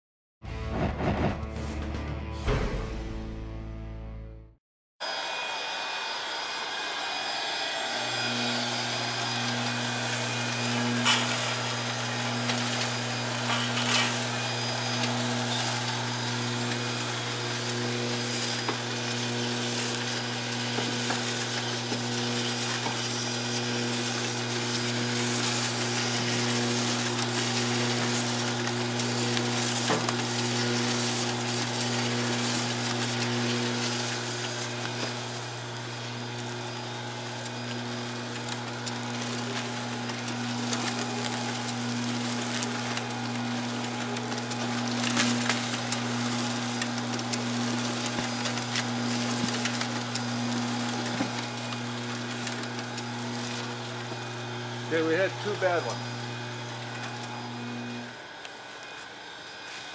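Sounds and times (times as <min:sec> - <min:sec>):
wrapping machine running: 0:05.0 - 0:59.9.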